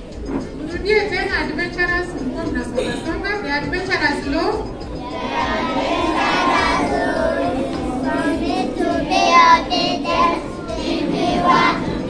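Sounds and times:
children singing: 4.8 - 12.0.

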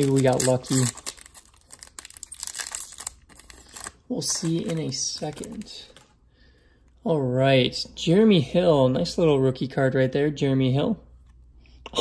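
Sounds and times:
foil wrapper crinkling and tearing: 0.0 - 6.0.

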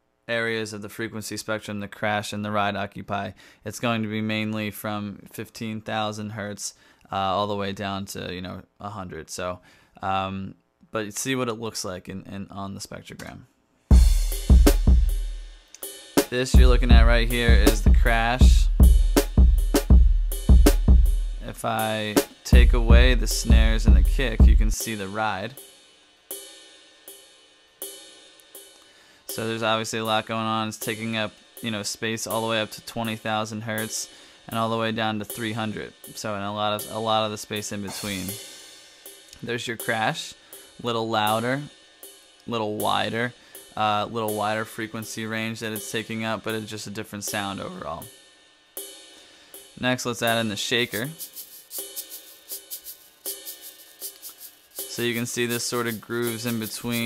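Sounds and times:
ride cymbal hits: 13.9 - 33.2, 35.3 - 57.0
crash cymbal ringing: 37.9 - 39.4.

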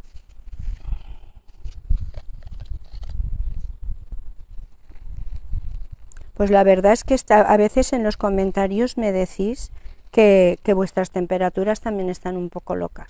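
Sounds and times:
microphone rumbling and buffeting: 0.0 - 10.9.

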